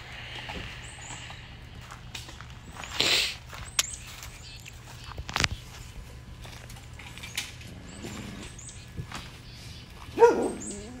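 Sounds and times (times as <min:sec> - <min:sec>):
bark-like animal call: 0:10.2 - 0:11.0.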